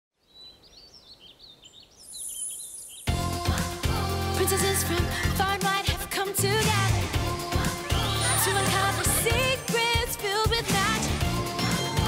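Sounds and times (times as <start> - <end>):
birds chirping: 0.2 - 3.2
cartoon theme song: 3.1 - 12.0.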